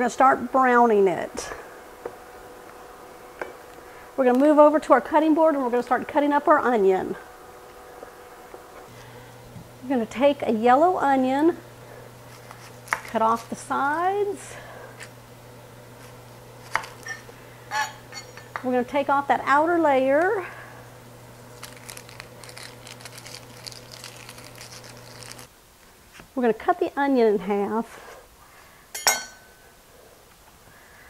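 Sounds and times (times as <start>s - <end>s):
faint steady hum: 0.0s - 31.0s
knife slicing onion: 12.3s - 13.6s, 16.6s - 17.1s.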